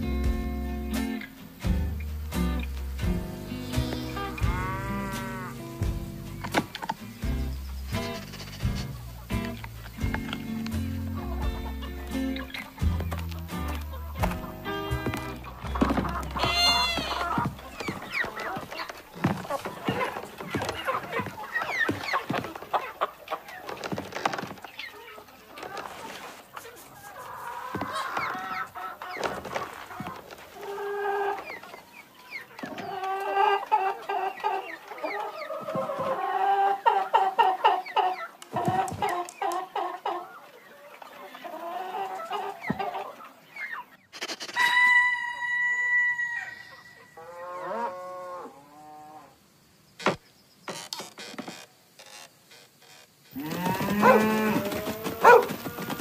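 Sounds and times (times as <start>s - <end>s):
cartoon clucking calls: 3.5s - 5.7s, 11.1s - 18.7s.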